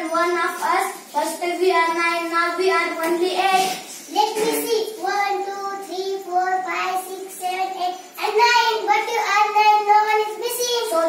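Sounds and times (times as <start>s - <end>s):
children singing slow tune: 3.4s - 11.0s.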